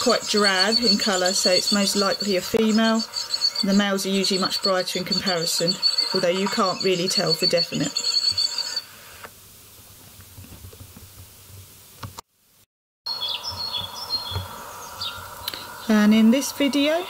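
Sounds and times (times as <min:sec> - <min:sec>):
small songbird chirping: 0:00.0 - 0:08.8, 0:13.1 - 0:16.2
high steady tone: 0:00.0 - 0:09.0
steady hum: 0:00.0 - 0:10.0, 0:13.1 - 0:17.0.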